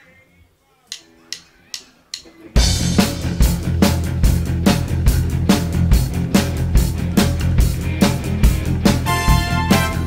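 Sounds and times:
drumstick clicks: 0.9s - 2.4s
live rock band playing: 2.2s - 10.0s.

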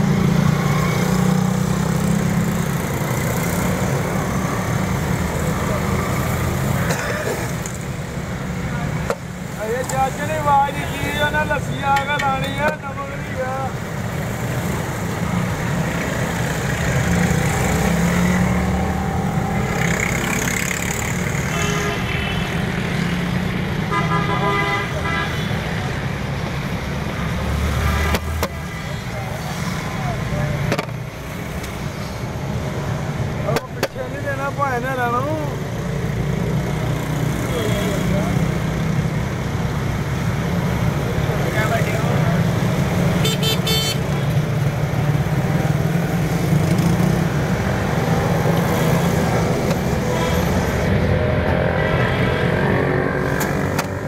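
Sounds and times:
road traffic passing: 0.0s - 54.0s
vehicle horns: 21.4s - 22.5s, 23.8s - 25.8s, 43.2s - 44.3s.

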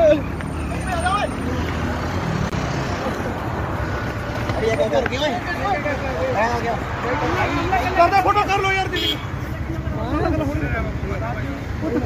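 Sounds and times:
people talking: 4.4s - 12.0s.

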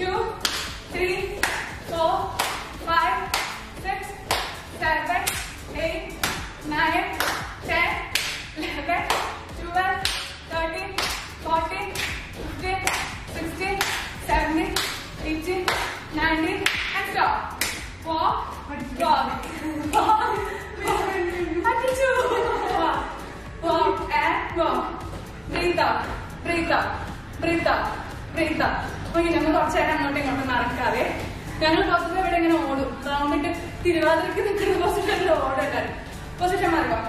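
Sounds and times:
rhythmic hand claps: 0.4s - 18.0s, 19.3s - 23.4s.

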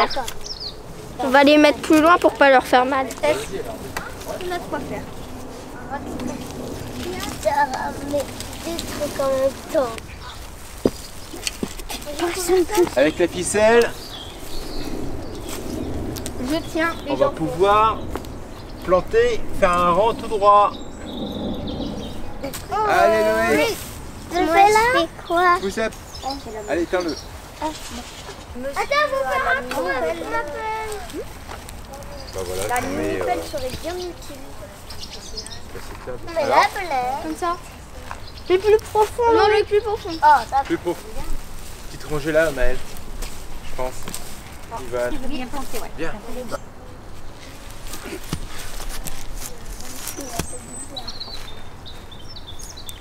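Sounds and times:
footsteps rustling straw and soil: 0.0s - 20.4s, 22.5s - 53.0s
low outdoor background: 0.0s - 53.0s
rakes scratching through straw: 4.2s - 13.2s, 38.7s - 51.5s.

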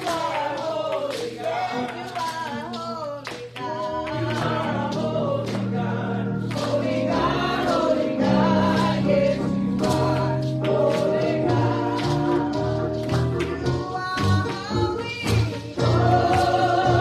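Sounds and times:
hand claps: 0.0s - 7.9s, 8.5s - 17.0s
gospel choir singing: 0.0s - 17.0s.

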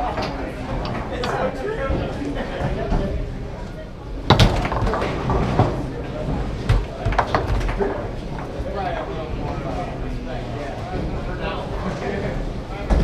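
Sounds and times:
foosball ball clacks: 4.2s - 8.6s
foosball rods knocking: 4.2s - 8.6s.

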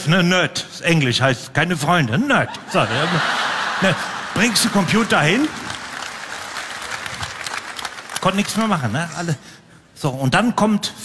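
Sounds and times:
audience applauding: 2.8s - 9.2s.

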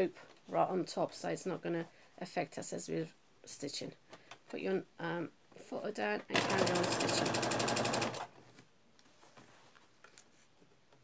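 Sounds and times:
sewing machine stitching: 6.3s - 8.3s.

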